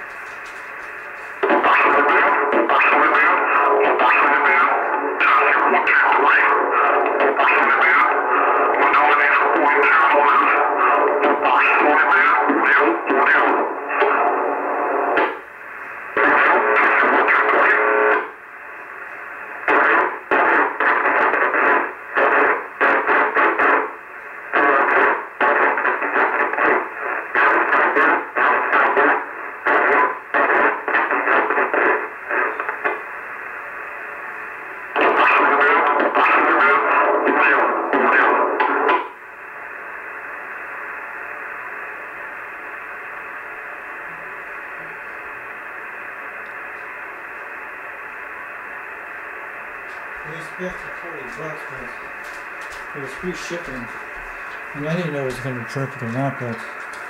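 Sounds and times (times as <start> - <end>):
radio static hiss: 0.0 - 57.0
radio transmissions from speaker: 0.0 - 57.0.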